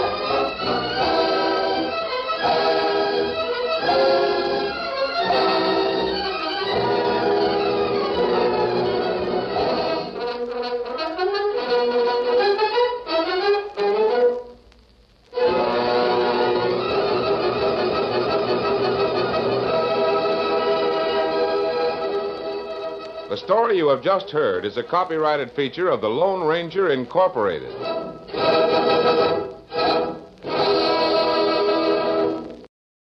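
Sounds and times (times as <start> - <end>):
orchestral music with brass: 0.0 - 14.5, 15.4 - 23.4, 27.7 - 32.5.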